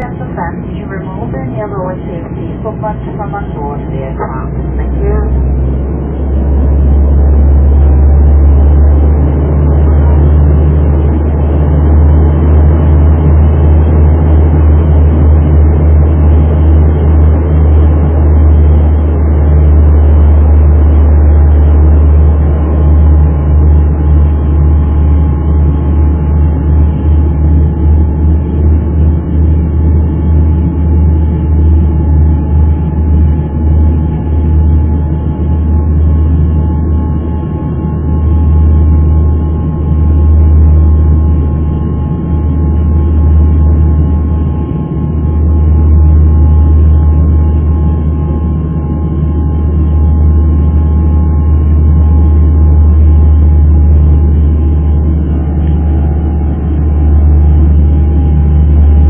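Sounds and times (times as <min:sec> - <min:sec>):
high engine whine: 0:00.0 - 0:59.0
turboprop engines droning: 0:00.0 - 0:59.0.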